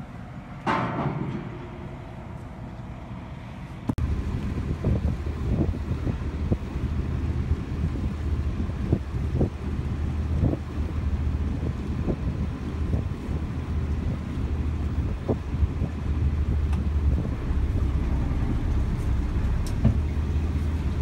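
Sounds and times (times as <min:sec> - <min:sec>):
wind buffeting microphone: 0:00.7 - 0:21.0.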